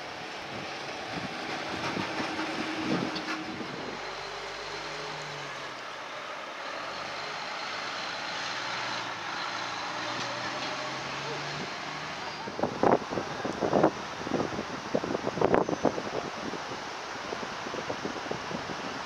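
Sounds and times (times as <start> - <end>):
fire engine driving past: 0.0 - 19.0
tyres on road: 0.0 - 19.0.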